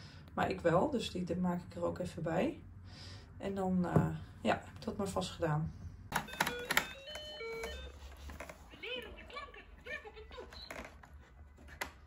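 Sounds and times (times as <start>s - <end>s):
toy laptop beeping: 6.1s - 11.0s.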